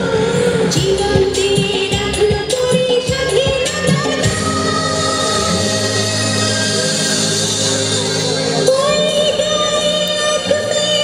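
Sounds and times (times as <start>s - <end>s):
dance song with singing: 0.0s - 7.6s.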